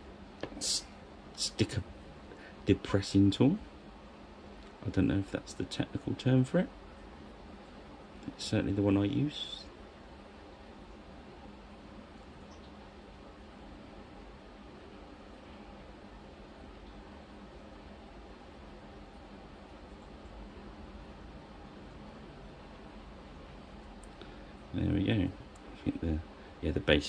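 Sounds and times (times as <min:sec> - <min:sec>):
background hiss: 0:00.0 - 0:27.0
faint low hum: 0:00.0 - 0:27.0.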